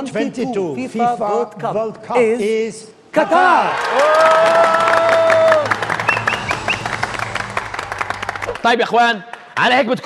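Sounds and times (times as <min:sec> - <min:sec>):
men cheering: 0:03.2 - 0:08.6
men clapping: 0:03.7 - 0:09.8.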